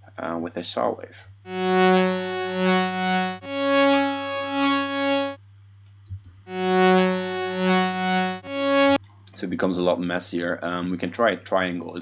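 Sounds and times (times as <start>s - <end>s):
synth held tones: 1.5s - 5.4s, 6.5s - 9.0s.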